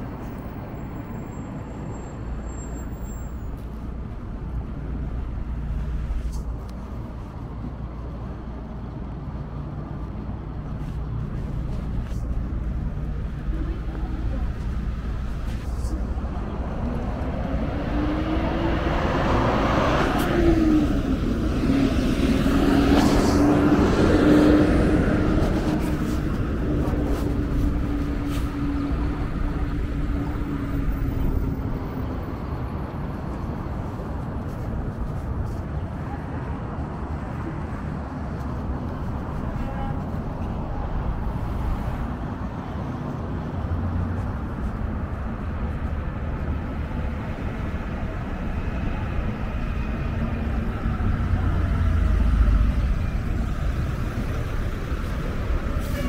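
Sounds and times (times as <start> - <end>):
low traffic rumble: 0.0 - 56.0
vehicles passing: 0.0 - 56.0
engine hum rising in pitch: 16.0 - 31.4.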